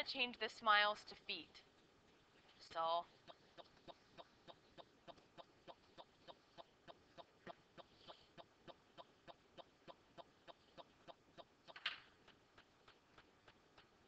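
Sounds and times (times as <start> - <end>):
faint even ticking: 3.0 - 14.0.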